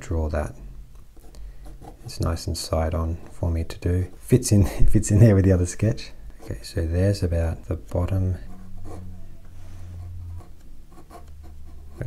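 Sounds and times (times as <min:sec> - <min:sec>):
low hum: 0:06.1 - 0:12.0
pen scratching on paper: 0:08.5 - 0:09.0, 0:10.2 - 0:12.0.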